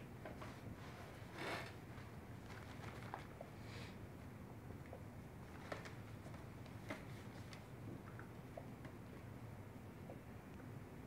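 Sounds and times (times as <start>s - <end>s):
handling noise from gloved hands: 1.6s - 3.5s.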